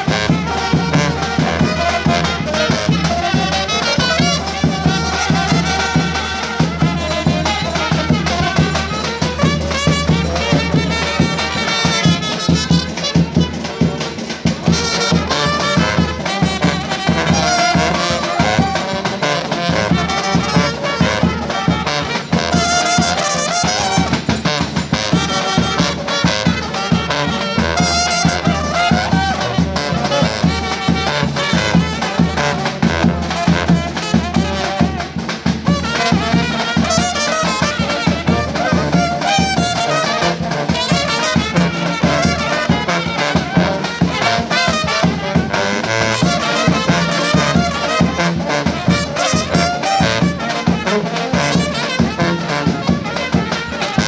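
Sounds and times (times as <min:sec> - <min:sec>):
bass drum beating: 0:00.0 - 0:23.4
trumpets playing melody: 0:00.0 - 0:54.0
tuba: 0:00.0 - 0:54.0.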